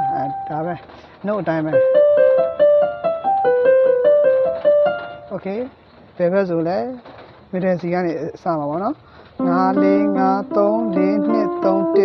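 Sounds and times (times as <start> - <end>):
person's voice sliding pitch: 9.4 - 12.0.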